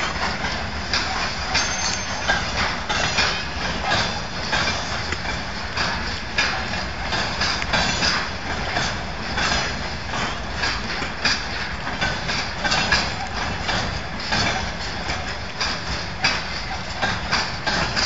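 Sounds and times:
freight train rolling: 0.0s - 18.0s
train wheels clacking over rail joints: 0.0s - 18.0s.

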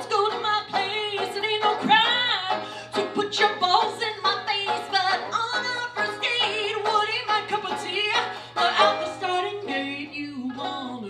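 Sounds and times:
picked banjo: 0.0s - 11.0s
woman singing yodel-like: 0.0s - 11.0s.

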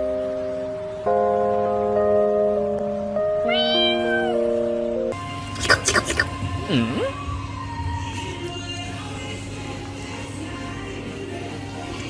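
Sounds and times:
cat meowing: 3.4s - 4.5s.

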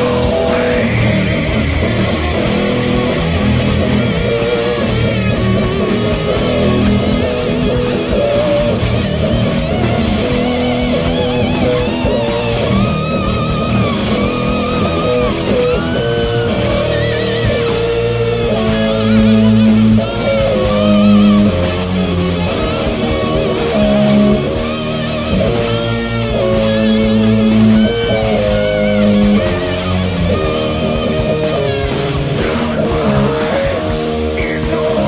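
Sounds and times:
distorted electric guitar metal: 0.0s - 35.0s.

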